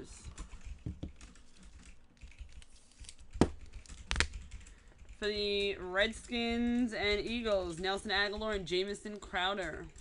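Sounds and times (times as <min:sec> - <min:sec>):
cards clicking and tapping on table: 0:00.8 - 0:01.2, 0:02.6 - 0:04.3.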